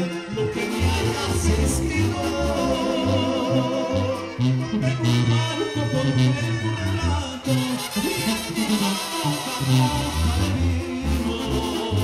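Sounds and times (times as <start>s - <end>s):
people singing: 0.0s - 7.2s, 8.0s - 12.0s
brass and clarinets: 0.0s - 12.0s
tuba bass line: 0.0s - 12.0s.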